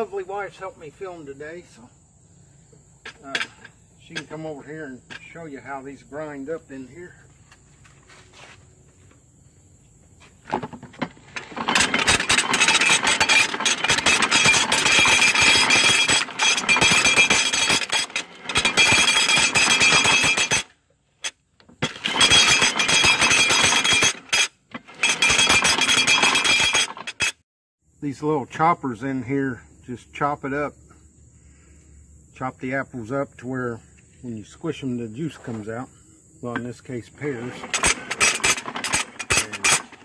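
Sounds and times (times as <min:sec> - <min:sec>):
clatter of metal cutters and gears: 0:10.5 - 0:27.4, 0:36.5 - 0:40.0
fruit crunching in grinder: 0:10.7 - 0:20.6, 0:37.2 - 0:40.0.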